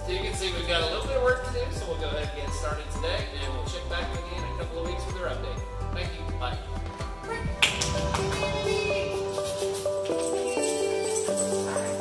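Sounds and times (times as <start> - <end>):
background music held notes: 0.0 - 12.0.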